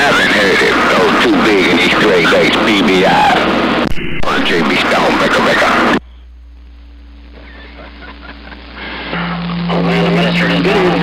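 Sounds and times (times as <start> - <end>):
garbled radio voice: 0.0 - 6.0, 7.4 - 11.0
faint steady radio tones: 0.0 - 11.0
low radio tone: 0.0 - 11.0
radio band noise hiss: 0.0 - 11.0.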